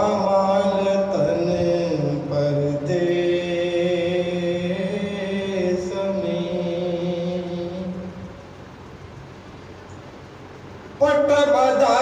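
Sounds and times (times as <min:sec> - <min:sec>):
man chanting a lament: 0:00.0 - 0:08.2, 0:11.0 - 0:12.0.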